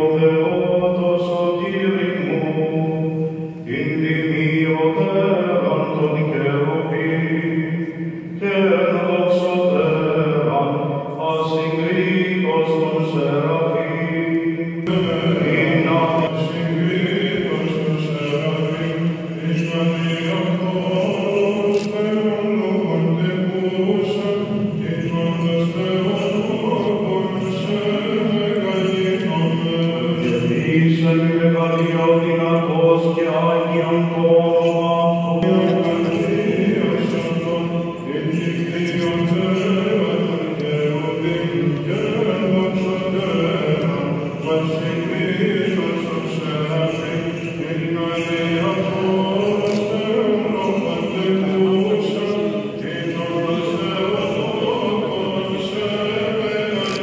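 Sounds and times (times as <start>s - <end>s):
men chanting: 8.4s - 57.0s.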